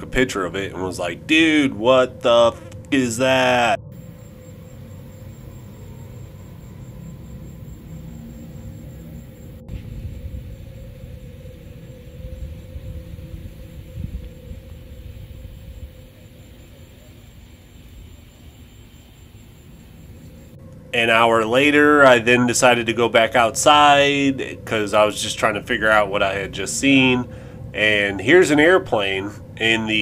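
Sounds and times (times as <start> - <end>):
faint steady hum: 0.0 - 30.0
low rumbling outdoor noise: 0.0 - 30.0.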